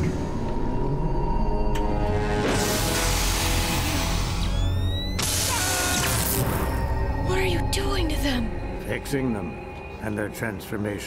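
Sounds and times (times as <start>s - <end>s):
rising electronic whine: 0.0s - 5.3s
dark cartoon underscore: 0.0s - 11.0s.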